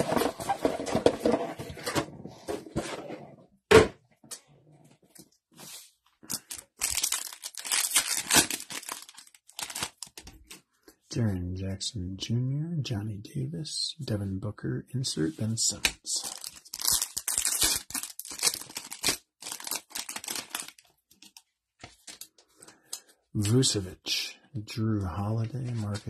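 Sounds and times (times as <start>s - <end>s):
foil wrappers crinkling and tearing: 6.2s - 10.3s, 16.2s - 21.4s.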